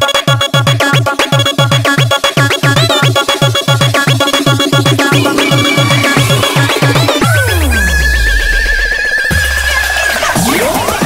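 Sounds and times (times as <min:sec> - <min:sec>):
wavering high synth tone: 0:02.2 - 0:09.3
falling synth sweep: 0:02.5 - 0:09.4.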